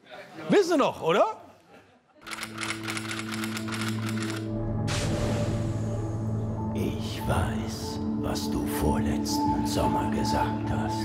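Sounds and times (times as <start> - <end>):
typewriter keys clacking: 2.3 - 4.4
low musical drone: 4.4 - 11.0.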